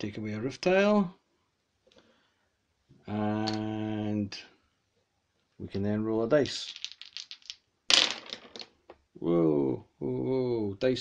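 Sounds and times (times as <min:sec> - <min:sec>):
dice clattering on a tabletop: 0:06.4 - 0:09.0.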